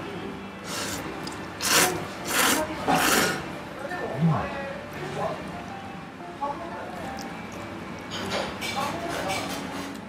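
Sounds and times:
person slurping noodles: 0.7s - 1.0s, 1.6s - 3.4s.

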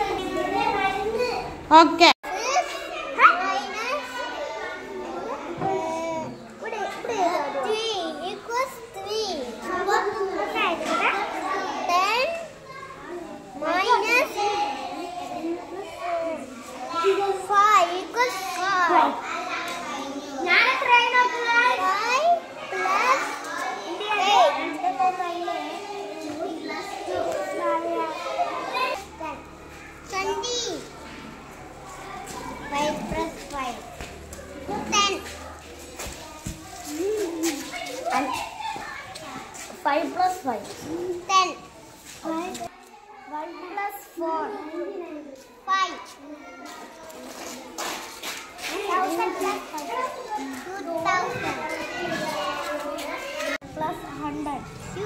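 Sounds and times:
children's voices: 0.0s - 55.0s
young boy talking: 48.7s - 55.0s.

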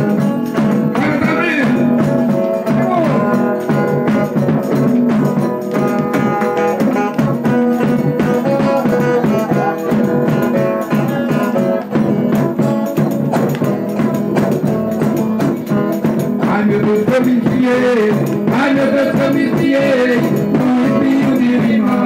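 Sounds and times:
folk dance music: 0.0s - 22.0s
percussive strikes: 0.0s - 22.0s.

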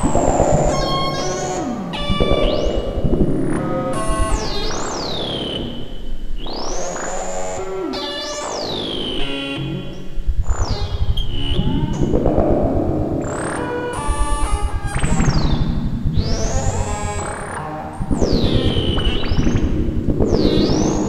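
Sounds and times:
pulsing low bass: 0.0s - 4.5s, 10.2s - 17.0s, 18.0s - 21.0s
synthesizer filter sweeps: 0.0s - 21.0s.

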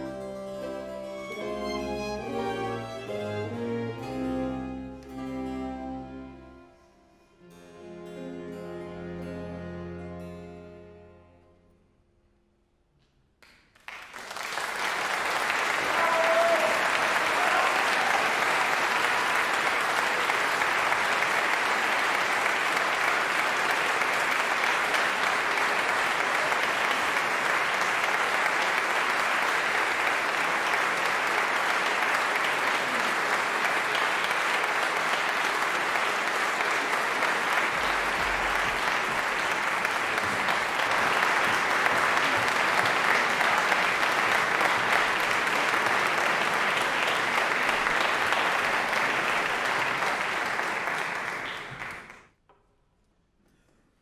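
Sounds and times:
audience applauding: 0.0s - 5.4s, 13.4s - 52.4s.

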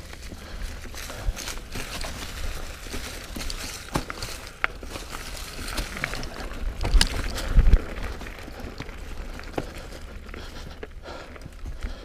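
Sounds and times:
mountain bike rattling: 0.0s - 12.0s
wind buffeting microphone: 5.9s - 10.0s.

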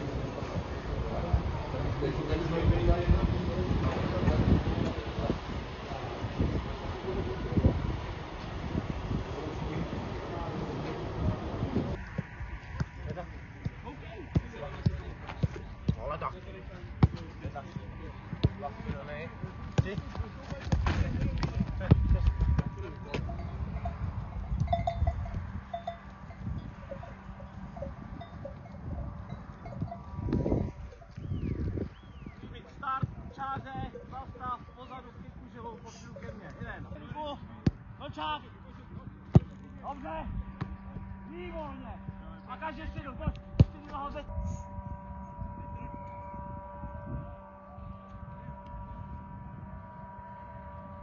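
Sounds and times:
football being kicked: 12.2s - 16.1s, 17.0s - 17.5s, 18.3s - 23.3s, 39.3s - 39.6s, 40.6s - 41.0s, 43.6s - 43.9s
football kicks on grass: 19.6s - 22.7s.

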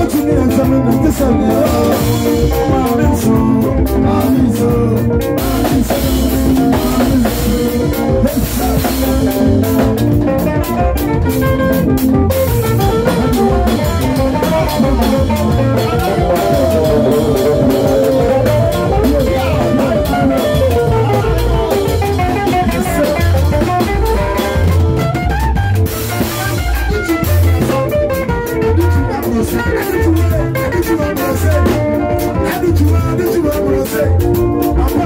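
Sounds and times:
bass: 0.0s - 35.0s
drum kit beat: 0.0s - 35.0s
electric guitar melody: 0.0s - 35.0s.

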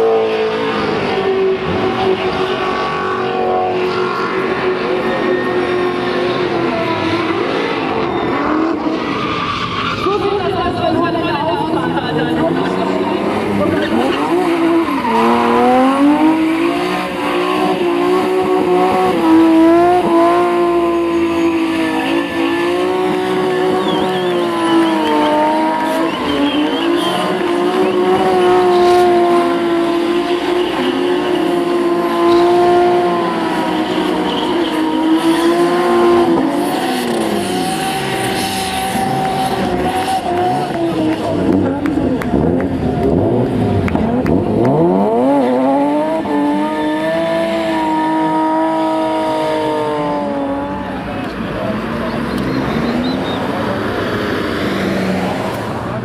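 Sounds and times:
car engine at high revs: 0.0s - 56.0s
tyres squealing: 20.6s - 40.9s.

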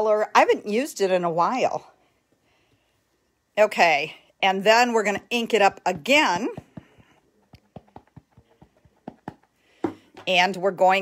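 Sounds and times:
rubber stamp tapping ink pad: 6.5s - 10.3s.

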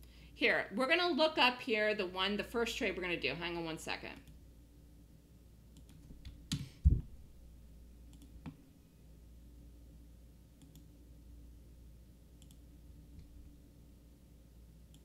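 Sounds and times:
faint steady hum: 0.0s - 15.0s
computer clicks: 5.8s - 6.7s, 8.1s - 8.6s, 10.6s - 10.9s, 12.4s - 12.6s.

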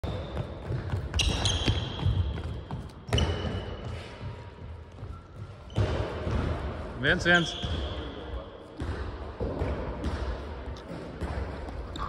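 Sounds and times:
shoe squeaks: 0.0s - 4.2s, 5.0s - 6.1s, 7.4s - 8.6s
running feet on hardwood court: 0.0s - 12.0s.

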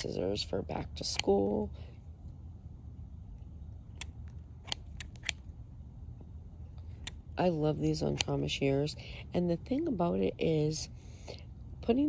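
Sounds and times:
shears blades clicking: 0.0s - 1.8s, 3.8s - 5.6s, 6.7s - 8.8s.

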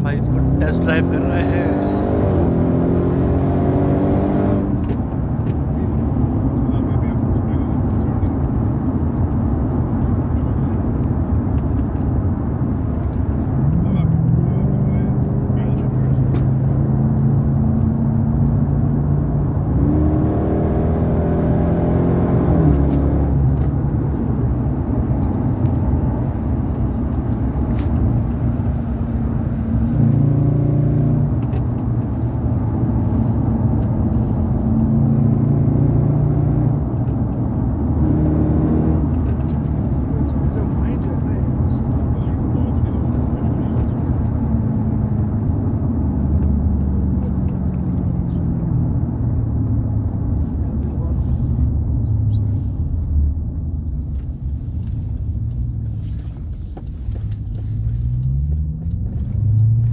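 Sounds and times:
car engine revving: 0.0s - 59.9s
road noise: 0.0s - 59.9s.

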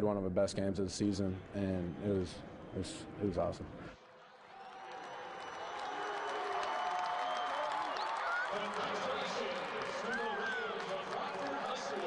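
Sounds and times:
stadium crowd cheering and applauding: 4.0s - 12.0s.

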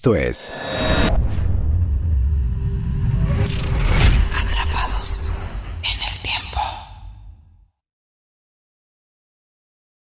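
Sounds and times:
deep low rumble: 0.6s - 7.7s.

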